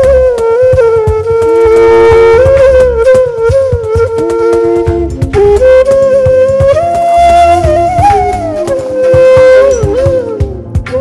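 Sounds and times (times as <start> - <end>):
bass: 0.0 - 11.0
sliding lead melody: 0.0 - 11.0.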